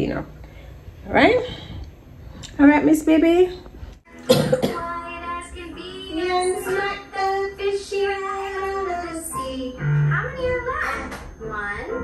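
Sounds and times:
child singing over music: 0:04.1 - 0:12.0.

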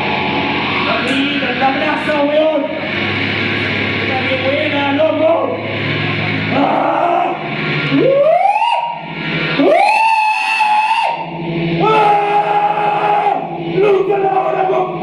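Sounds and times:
long sliding pitched notes: 0:00.0 - 0:15.0
low steady drone: 0:00.0 - 0:15.0.

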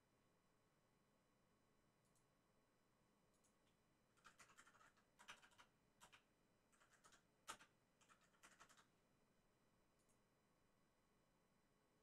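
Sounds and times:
faint computer keyboard typing: 0:02.0 - 0:02.3, 0:03.3 - 0:08.9, 0:09.9 - 0:10.2.

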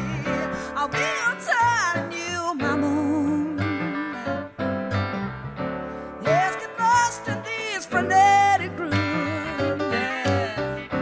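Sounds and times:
person singing: 0:00.0 - 0:04.6, 0:06.2 - 0:11.0
live band chords: 0:00.0 - 0:11.0.

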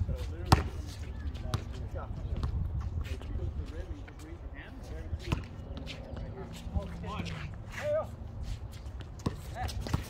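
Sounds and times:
players' voices: 0:00.0 - 0:10.0
basketball bouncing on concrete: 0:00.4 - 0:00.9, 0:09.0 - 0:10.0.

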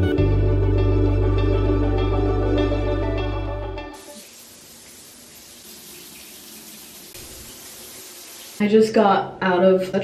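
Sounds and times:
shower water running: 0:04.0 - 0:09.1.

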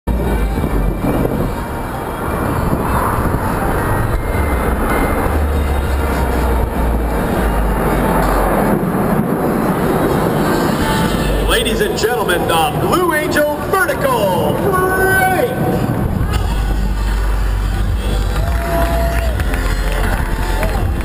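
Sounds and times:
deep fluctuating rumble: 0:00.1 - 0:13.7, 0:15.5 - 0:21.0
crowd din: 0:00.1 - 0:21.0
music over loudspeakers: 0:00.1 - 0:21.0.

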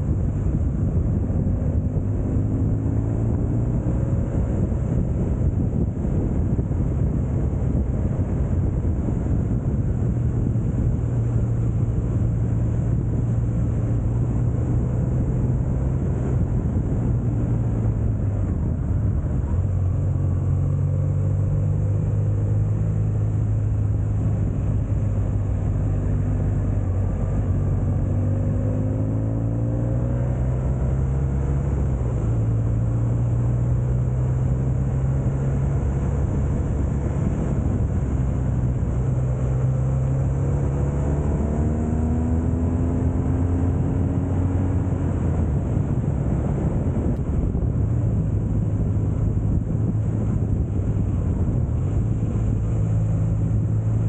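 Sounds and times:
wind and road noise: 0:00.0 - 0:54.0.

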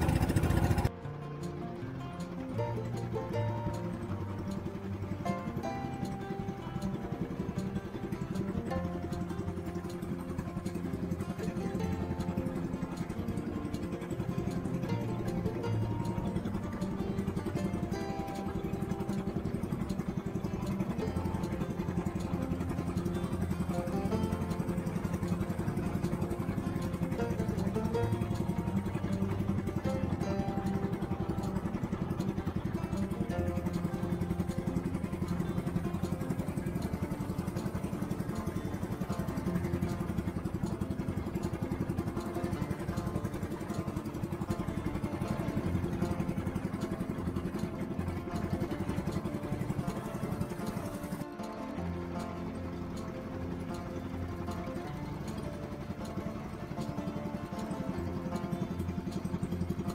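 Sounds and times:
boat engine running: 0:00.0 - 0:59.9
plucked guitar music: 0:00.0 - 0:59.9.

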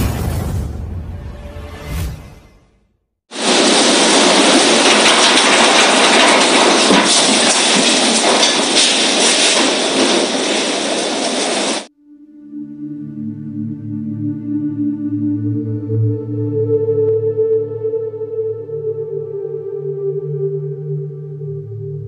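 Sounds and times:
violent wind rushing: 0:03.3 - 0:11.9.

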